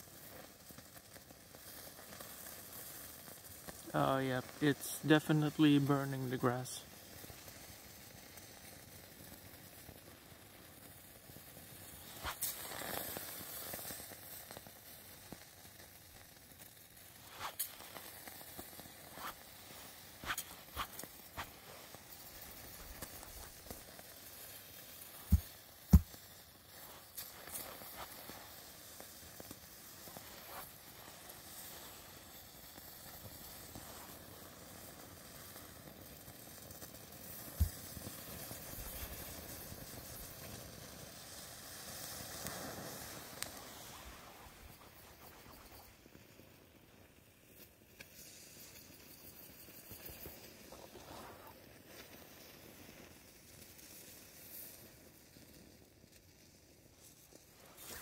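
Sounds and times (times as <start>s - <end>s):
burning mixture hissing and crackling: 0.0s - 58.0s
sharp pops: 12.0s - 13.9s, 17.0s - 31.1s, 37.3s - 40.6s.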